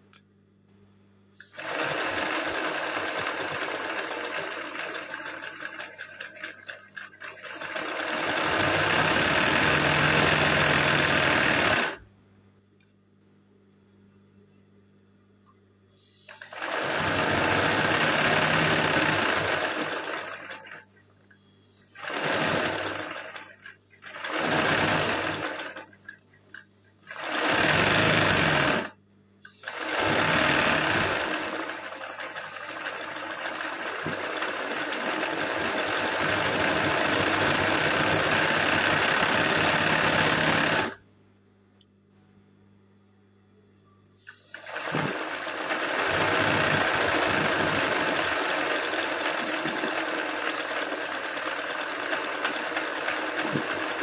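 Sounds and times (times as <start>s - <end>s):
sewing machine running: 1.4s - 12.0s, 16.3s - 20.8s, 21.9s - 28.9s, 29.5s - 41.0s, 44.3s - 54.0s.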